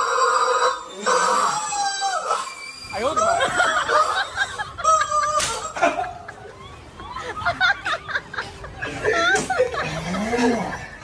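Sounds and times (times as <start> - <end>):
rubber chicken toy squealing: 0.0 - 5.8.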